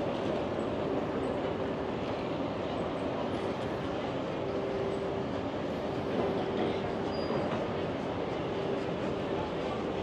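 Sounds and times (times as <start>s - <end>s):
city street noise: 0.0s - 10.0s
continuous mechanical hum: 0.0s - 10.0s.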